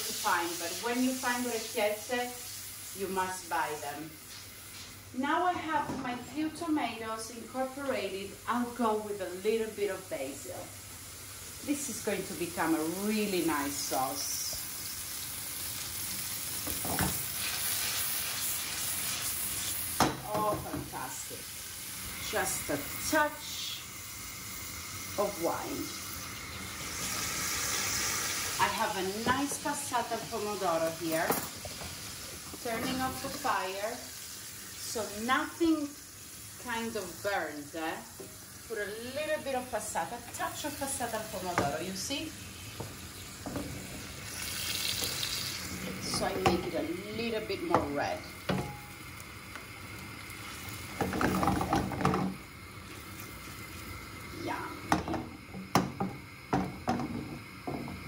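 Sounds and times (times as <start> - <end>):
food sizzling in hot oil: 0.0 - 58.0.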